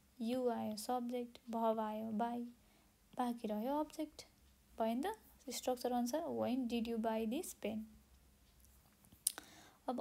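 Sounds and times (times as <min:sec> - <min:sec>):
person speaking: 0:00.1 - 0:08.0, 0:09.2 - 0:10.0.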